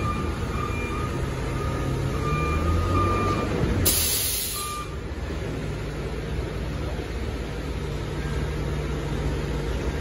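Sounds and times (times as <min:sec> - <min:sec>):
high beeping alarm: 0:00.0 - 0:03.5, 0:04.3 - 0:05.0
air brake hiss: 0:03.8 - 0:04.9.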